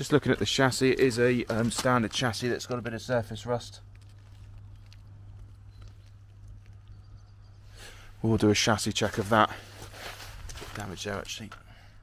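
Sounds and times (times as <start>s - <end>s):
footsteps on gravel: 0.0s - 7.0s
low steady hum: 0.0s - 12.0s.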